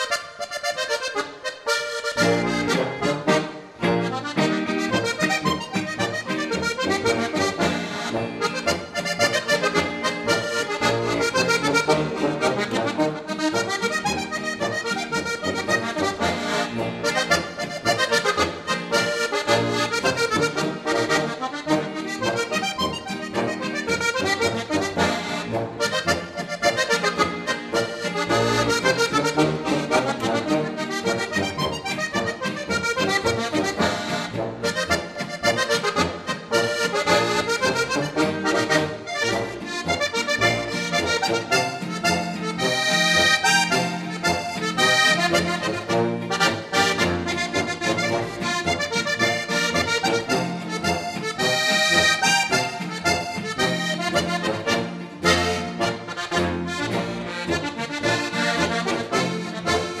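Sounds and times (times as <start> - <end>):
button accordion playing polka: 0.0 - 60.0.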